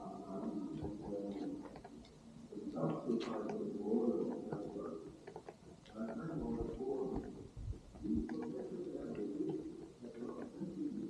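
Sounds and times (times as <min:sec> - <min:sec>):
bird cooing: 0:00.0 - 0:11.0.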